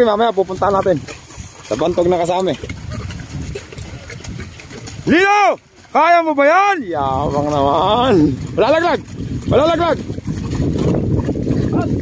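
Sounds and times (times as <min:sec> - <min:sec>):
mud and water sloshing: 0:00.0 - 0:12.0.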